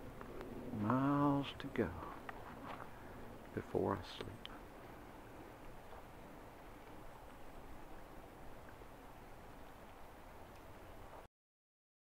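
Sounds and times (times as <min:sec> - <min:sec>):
outdoor low rumble: 0:00.0 - 0:11.3.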